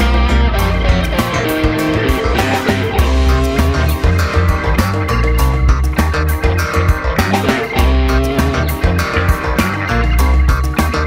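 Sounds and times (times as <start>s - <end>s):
electric guitar: 0.0s - 11.0s
heavy bass: 0.0s - 11.0s
rock music: 0.0s - 11.0s
steady drum beat: 0.0s - 11.0s.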